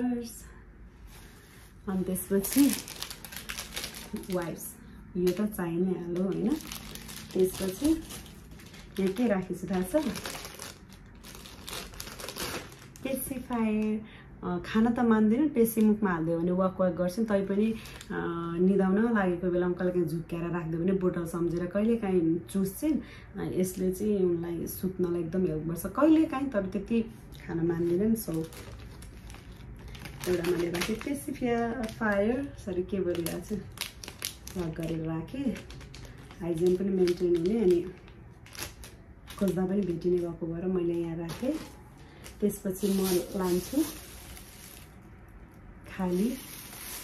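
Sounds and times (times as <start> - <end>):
woman speaking: 0.0 - 0.7, 1.8 - 3.0, 4.0 - 8.2, 8.9 - 10.4, 13.0 - 28.6, 30.2 - 33.7, 34.5 - 35.8, 36.4 - 38.0, 39.3 - 41.8, 42.4 - 44.2, 45.8 - 46.7
plastic bag crinkling: 2.0 - 13.9, 17.5 - 18.3, 27.7 - 47.0.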